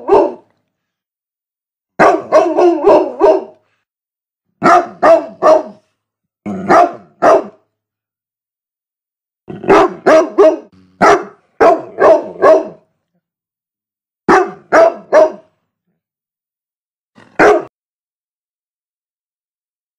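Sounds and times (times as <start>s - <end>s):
large dog barking: 0.0s - 0.5s, 2.0s - 3.6s, 4.6s - 5.9s, 6.5s - 7.6s, 9.5s - 12.9s, 14.3s - 15.6s, 17.3s - 17.7s.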